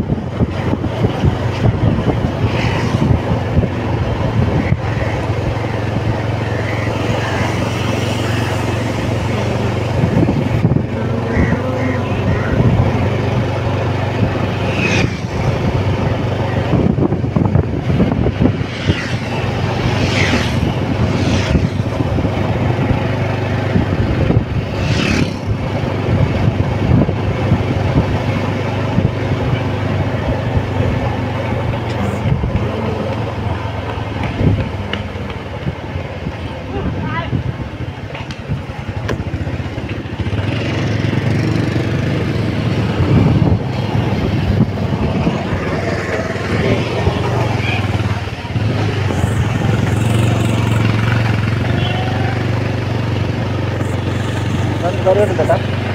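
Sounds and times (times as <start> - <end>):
road noise: 0.0 - 55.9
vehicle engine drone: 0.0 - 55.9.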